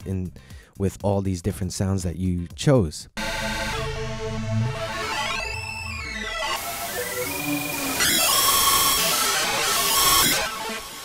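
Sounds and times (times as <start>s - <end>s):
synthesizer sequence: 3.2s - 11.0s.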